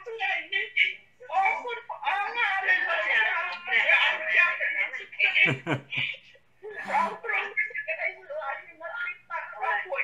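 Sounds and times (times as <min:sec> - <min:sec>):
man chuckling: 0:05.4 - 0:06.0.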